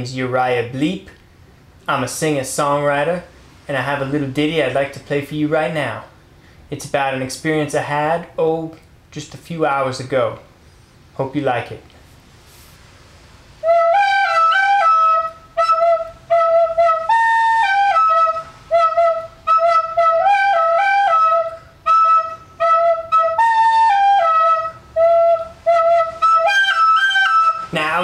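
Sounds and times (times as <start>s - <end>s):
recorder playing melody: 13.6s - 28.0s.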